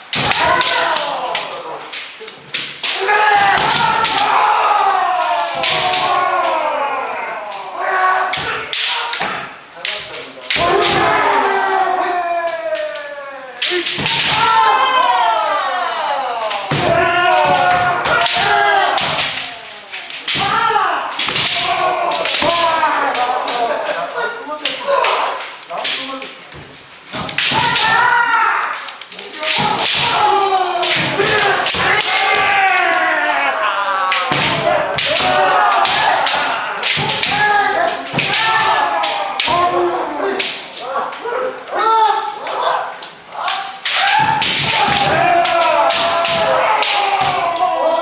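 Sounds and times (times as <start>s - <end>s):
people shouting long shouts: 0.0s - 2.0s, 2.8s - 26.2s, 27.2s - 48.0s
bamboo swords striking: 0.0s - 6.7s, 7.9s - 11.3s, 13.6s - 15.1s, 16.4s - 23.8s, 27.1s - 32.9s, 34.0s - 40.8s, 43.4s - 48.0s.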